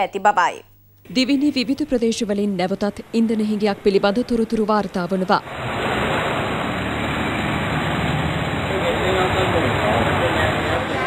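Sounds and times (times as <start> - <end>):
motorcycle engines idling: 5.5 - 11.0
rain: 5.5 - 11.0
faint voices: 8.7 - 11.0.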